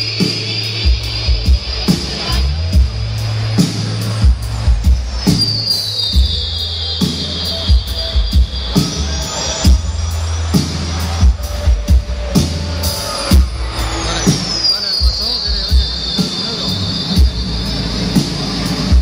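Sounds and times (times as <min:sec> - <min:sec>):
low bass notes: 0:00.0 - 0:05.5, 0:06.2 - 0:19.0
live band playing: 0:00.0 - 0:19.0.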